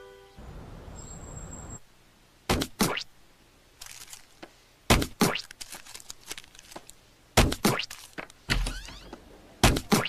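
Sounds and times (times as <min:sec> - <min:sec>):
cartoon fist thumping: 0:02.5 - 0:03.0, 0:04.9 - 0:05.4, 0:07.4 - 0:07.9, 0:09.6 - 0:10.0.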